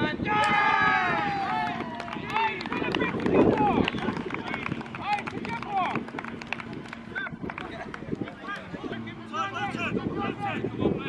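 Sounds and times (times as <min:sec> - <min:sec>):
players shouting: 0:00.2 - 0:06.1.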